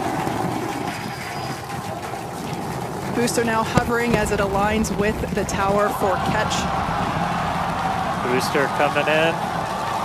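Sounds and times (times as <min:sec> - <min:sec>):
rocket engines roaring: 0:00.0 - 0:10.0.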